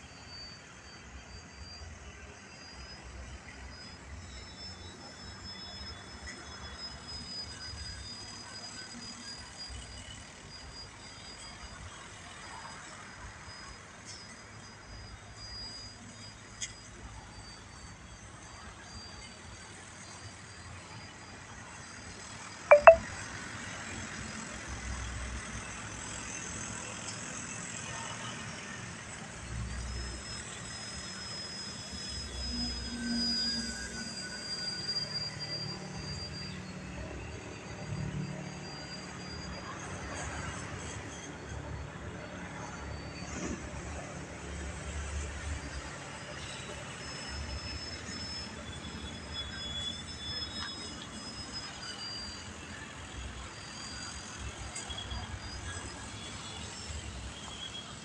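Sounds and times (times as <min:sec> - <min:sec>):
model plane propeller whine: 0:23.6 - 0:58.0.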